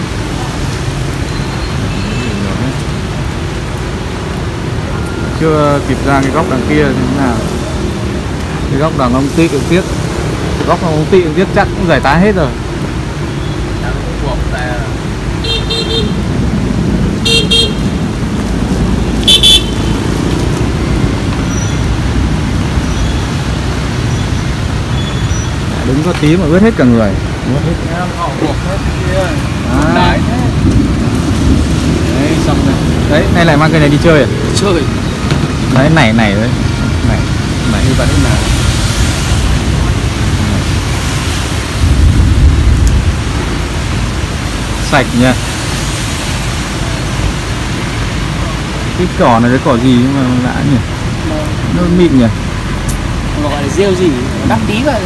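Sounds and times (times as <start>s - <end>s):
traffic rumble on wet street: 0.0s - 55.0s
vehicle horn honking: 15.4s - 16.2s, 17.2s - 17.9s, 19.2s - 20.0s
wind noise on microphone: 36.6s - 44.6s.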